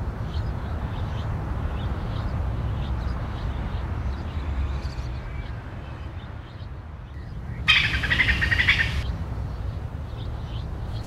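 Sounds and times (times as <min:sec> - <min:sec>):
bird chirping: 0:00.3 - 0:09.1.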